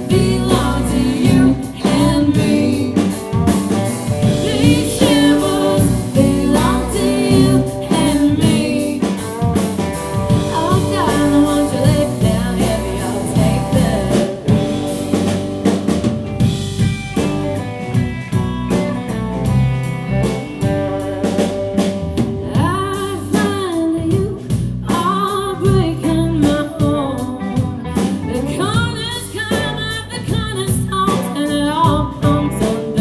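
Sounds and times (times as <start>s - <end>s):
electric guitar lead bending: 0.0s - 22.9s
live band with drums and bass: 0.0s - 33.0s.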